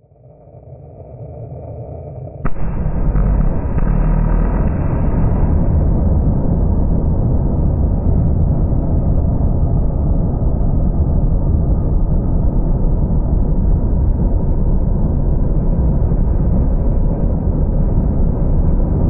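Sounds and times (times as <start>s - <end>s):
rocket engine rumble: 1.7s - 19.0s
sharp crack: 2.5s - 6.9s
deep rushing rocket thrust: 2.5s - 9.6s.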